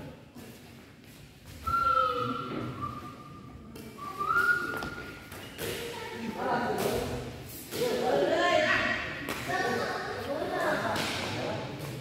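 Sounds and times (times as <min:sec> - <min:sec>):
high whistling tone: 0:01.6 - 0:05.2.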